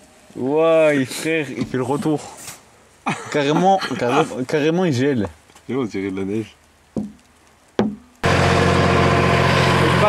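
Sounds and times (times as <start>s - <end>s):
tractor engine humming: 7.0s - 10.0s.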